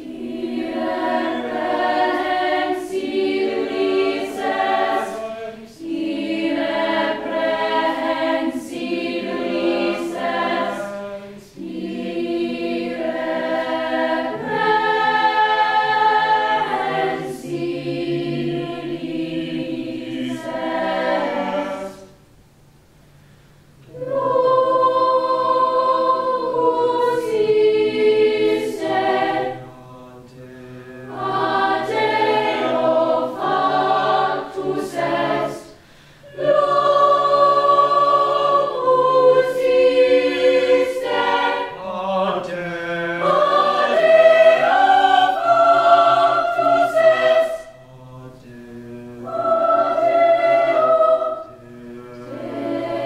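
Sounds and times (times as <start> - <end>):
choir singing held chords: 0.0 - 22.5, 23.7 - 53.0.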